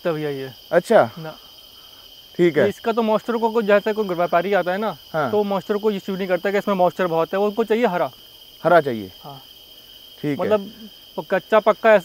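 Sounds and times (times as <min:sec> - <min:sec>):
insects chirring: 0:00.0 - 0:12.0
man talking: 0:02.4 - 0:06.9, 0:10.2 - 0:12.0.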